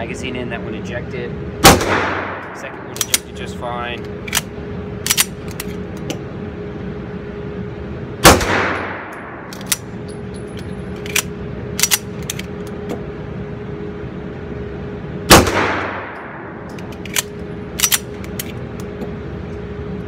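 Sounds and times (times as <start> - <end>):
steady hum: 0.0 - 20.0
pistol shots: 1.6 - 2.6, 8.2 - 9.5, 15.3 - 16.4.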